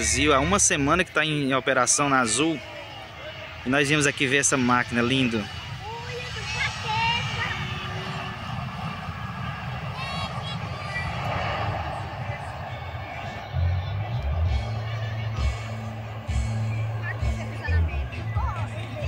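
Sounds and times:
jet engines rushing on landing: 0.0 - 19.0
music with deep bass: 12.6 - 19.0.

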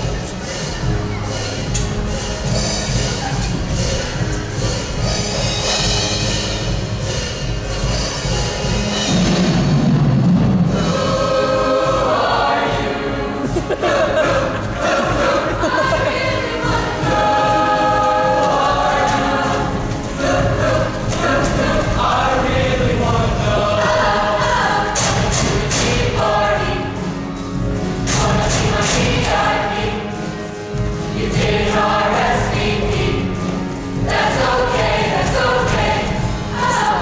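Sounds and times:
choir singing in harmony: 0.0 - 37.0.

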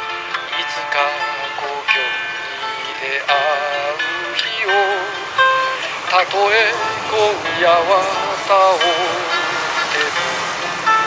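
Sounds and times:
strummed acoustic guitar: 0.0 - 11.0
man singing a slow ballad: 0.5 - 11.0.

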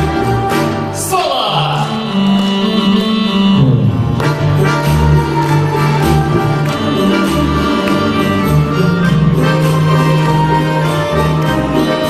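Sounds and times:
folk instrument ensemble: 0.0 - 12.0.

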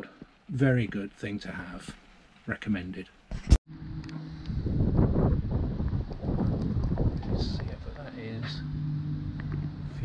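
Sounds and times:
wind buffeting microphone: 3.8 - 10.0.

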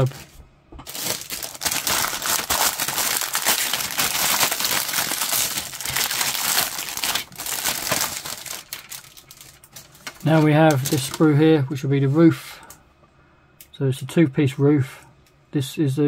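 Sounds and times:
plastic bag crinkling: 0.0 - 11.4.

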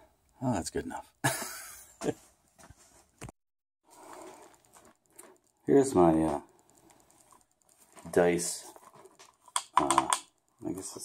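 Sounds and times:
faint clicks: 4.2 - 11.0.

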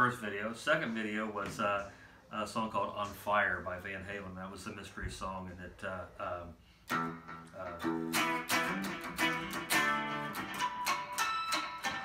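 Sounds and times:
electric guitar rock riff: 6.9 - 12.0.

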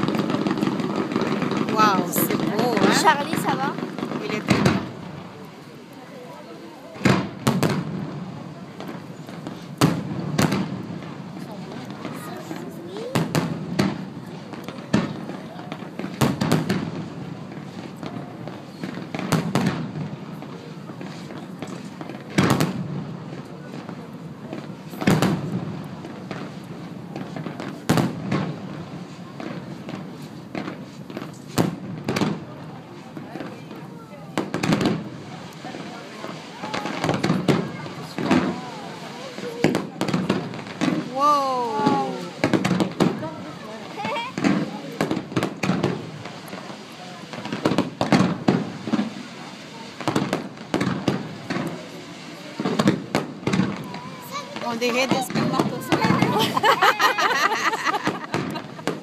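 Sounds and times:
firework shells bursting: 0.0 - 6.1, 7.0 - 41.2, 41.8 - 59.0.

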